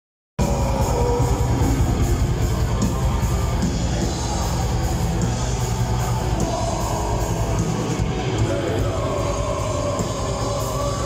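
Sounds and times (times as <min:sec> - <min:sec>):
distorted guitars: 0:00.4 - 0:11.0
rapid dense drumming: 0:00.4 - 0:11.0.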